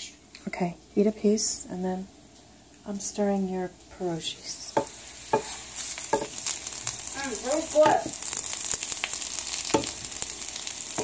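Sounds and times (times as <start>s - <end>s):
food sizzling in a frying pan: 0.9s - 11.0s
wooden spoon knocking against pan: 4.8s - 5.5s, 6.1s - 6.4s, 7.8s - 8.2s, 9.7s - 10.1s.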